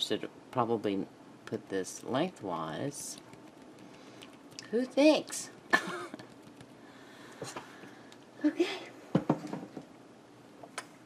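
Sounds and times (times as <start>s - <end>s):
knocks on a table: 9.2s - 9.9s.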